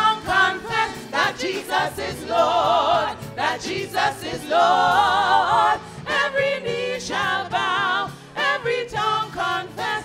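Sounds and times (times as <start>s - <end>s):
women singing gospel chorus: 0.0s - 10.0s.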